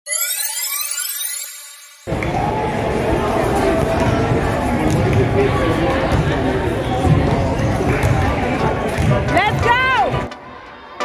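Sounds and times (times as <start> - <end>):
synthetic upward tone sweep: 0.1 - 2.1.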